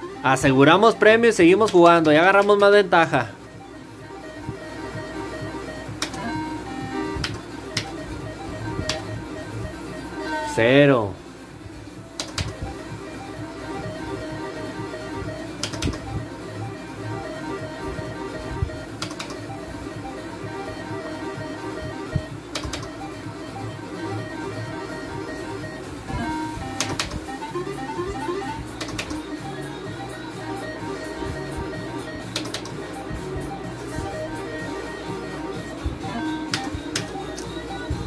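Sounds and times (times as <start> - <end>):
slot machine game music: 0.0 - 38.0
sharp clicks: 6.0 - 6.2, 7.2 - 8.0, 12.2 - 12.6, 15.6 - 16.1, 19.0 - 19.4, 22.5 - 22.9, 26.8 - 27.2, 28.8 - 29.2, 32.3 - 32.8.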